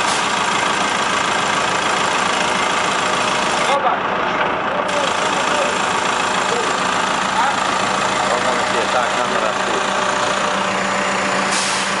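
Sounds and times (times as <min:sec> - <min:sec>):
diesel engine running: 0:00.0 - 0:12.0
hiss: 0:11.5 - 0:12.0.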